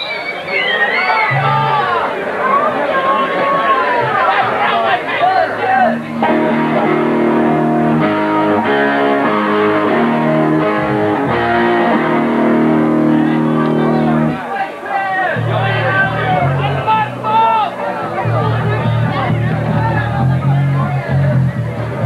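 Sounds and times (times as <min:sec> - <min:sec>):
audience shouting: 0:00.0 - 0:20.3
electric guitar chords: 0:05.5 - 0:14.4, 0:15.4 - 0:22.0.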